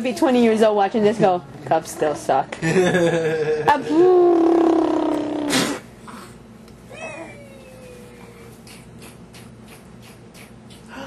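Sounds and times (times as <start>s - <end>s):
baby's long high voice: 6.9s - 8.8s.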